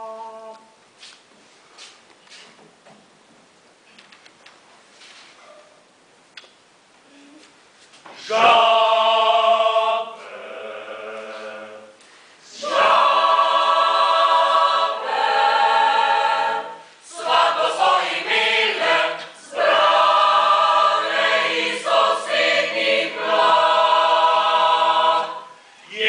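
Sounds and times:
mixed choir singing a cappella: 0.0s - 0.7s, 8.2s - 26.0s.

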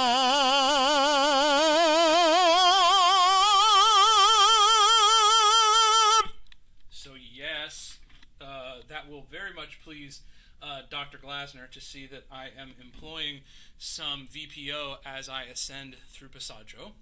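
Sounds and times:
man singing with vibrato: 0.0s - 6.4s.

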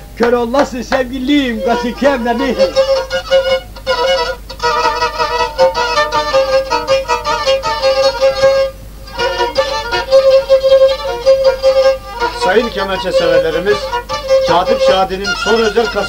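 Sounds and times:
bowed fiddle playing fast: 0.0s - 16.0s.

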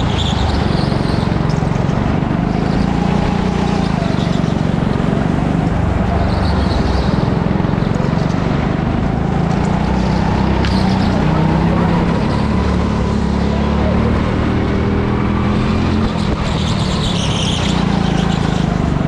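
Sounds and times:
go-kart engine running hard: 0.0s - 19.0s.

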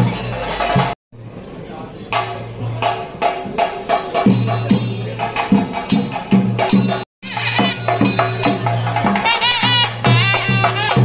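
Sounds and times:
percussion music: 0.0s - 11.0s.

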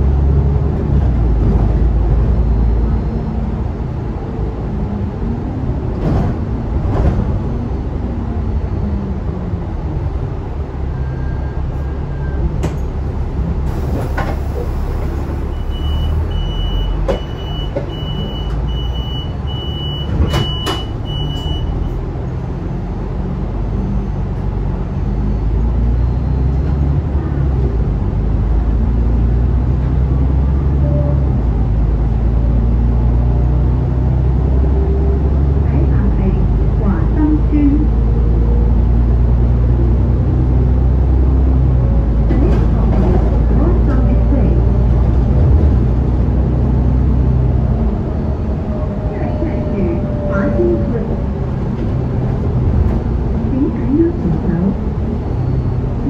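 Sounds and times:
bus engine running: 0.0s - 56.0s.

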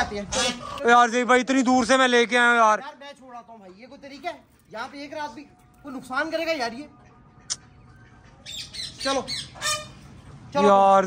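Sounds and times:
bird squawk: 0.2s - 0.9s, 6.9s - 10.2s
high bird chirps: 6.9s - 10.0s.

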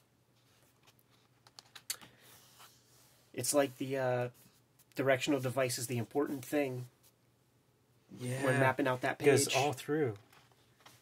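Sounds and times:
book pages handled: 10.2s - 11.0s.

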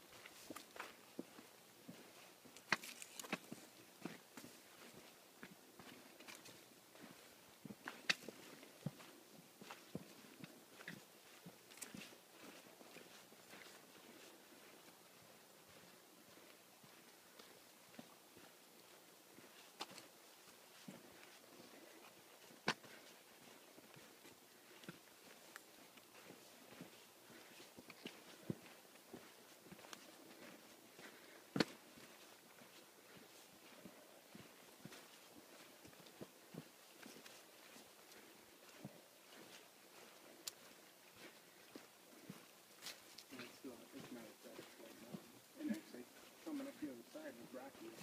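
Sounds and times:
footsteps on leafy rocky trail: 0.0s - 48.0s
footsteps on dry leaves: 24.1s - 48.0s.

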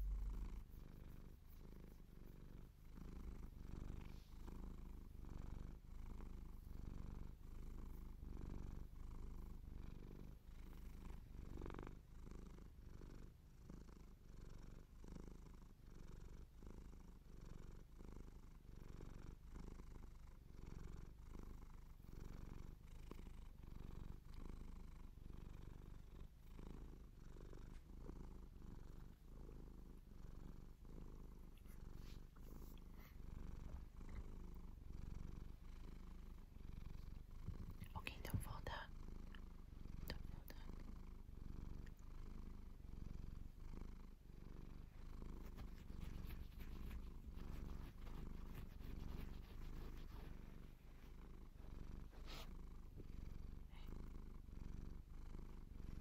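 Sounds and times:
cat purring: 0.0s - 56.0s
fingers scratching fur: 45.3s - 50.8s.

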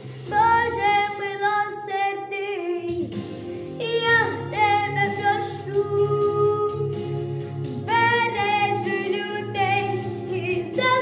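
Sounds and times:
girl singing: 0.3s - 3.2s, 3.8s - 7.2s, 7.8s - 11.0s
instrumental accompaniment: 2.5s - 11.0s.

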